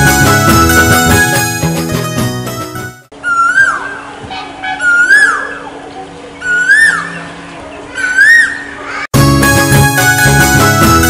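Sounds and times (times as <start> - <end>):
bird call rising and falling: 3.1 - 9.1.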